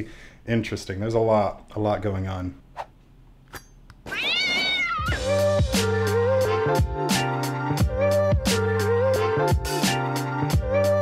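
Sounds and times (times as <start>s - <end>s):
meow-like call: 4.1s - 5.2s.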